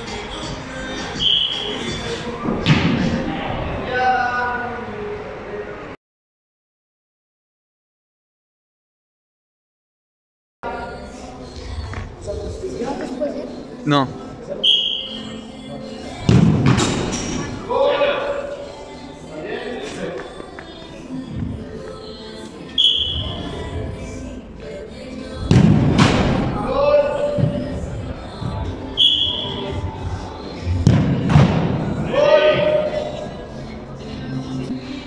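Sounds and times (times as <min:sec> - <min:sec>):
ball kicked with loud thud: 0:25.5 - 0:26.4.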